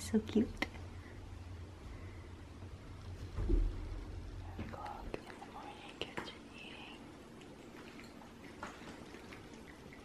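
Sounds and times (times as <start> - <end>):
person whispering: 4.6 - 7.1.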